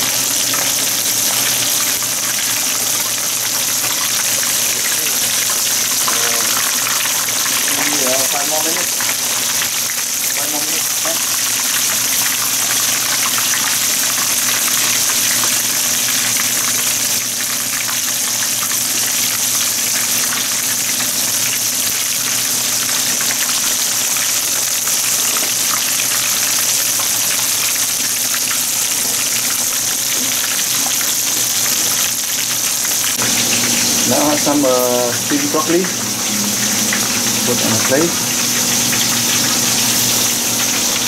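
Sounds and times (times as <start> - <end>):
fish deep-frying in oil: 0.0 - 41.0.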